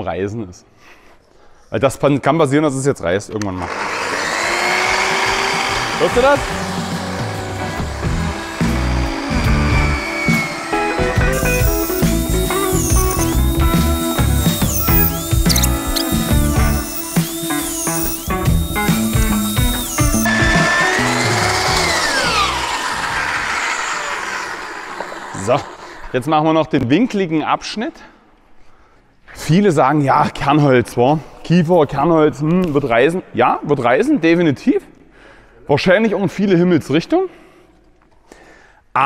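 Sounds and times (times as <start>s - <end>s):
band saw cutting timber: 3.6s - 26.1s
background music: 5.2s - 23.3s.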